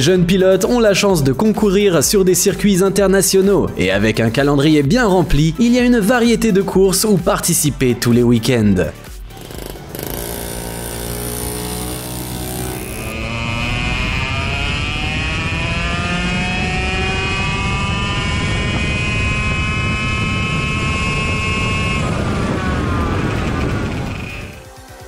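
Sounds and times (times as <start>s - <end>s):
race car engine revving: 9.2s - 24.8s.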